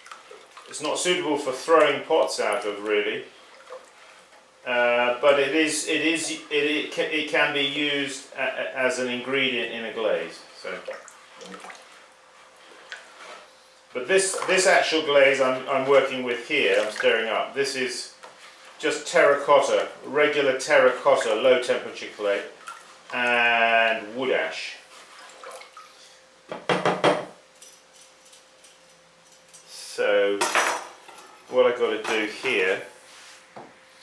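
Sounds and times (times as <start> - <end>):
wet swishing and sloshing: 0.0 - 2.6, 3.2 - 4.6, 10.6 - 14.9, 15.7 - 17.3, 22.4 - 23.5, 24.8 - 26.0
whisk stirring slurry in bucket: 0.0 - 7.6, 9.4 - 25.9.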